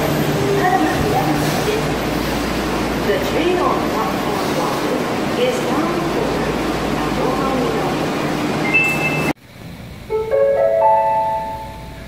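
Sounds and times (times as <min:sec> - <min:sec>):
train rumble and hiss: 0:00.0 - 0:12.0
high two-note beep: 0:08.7 - 0:09.4.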